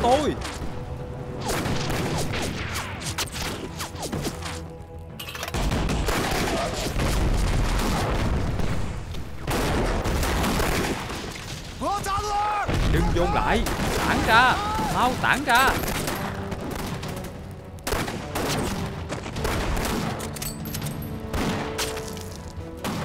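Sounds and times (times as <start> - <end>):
man yelling: 11.8 - 13.5, 14.2 - 15.8
heavy gunfire: 17.8 - 20.2.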